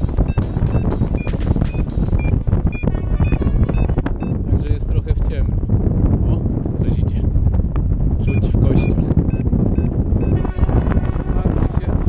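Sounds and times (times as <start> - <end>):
variometer beeping: 0.0 - 4.4, 8.2 - 10.4
wind noise on microphone: 0.0 - 12.0.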